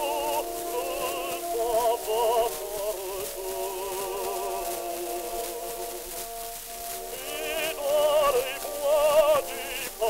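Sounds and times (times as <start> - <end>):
operatic tenor singing: 0.0 - 10.0
orchestral accompaniment: 0.0 - 10.0
record surface hiss: 0.0 - 10.0.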